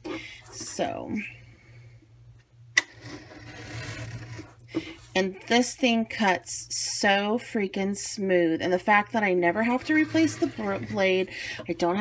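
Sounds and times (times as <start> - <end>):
blade scraping through card: 2.9 - 4.6.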